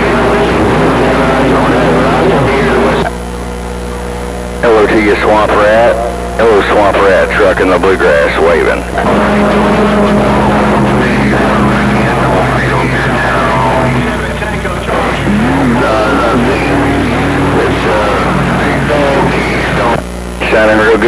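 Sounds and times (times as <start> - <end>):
droning radio tones: 0.0 - 21.0
garbled radio transmissions: 0.0 - 21.0.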